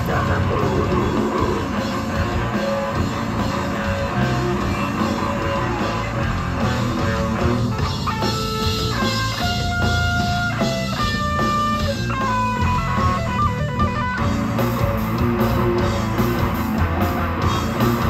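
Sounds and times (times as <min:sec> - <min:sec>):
death metal band playing: 0:00.0 - 0:18.0
guitar lead line: 0:00.0 - 0:18.0.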